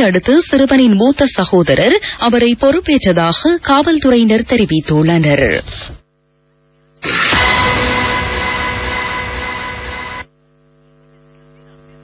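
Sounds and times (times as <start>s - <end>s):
steady low hum: 0.0s - 12.0s
loud noisy sound: 7.0s - 10.3s.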